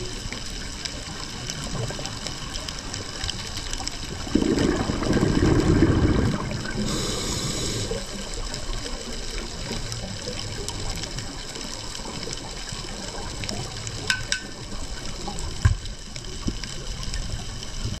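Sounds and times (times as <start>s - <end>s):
faint clicks: 0.0s - 4.3s
underwater water rush: 0.0s - 18.0s.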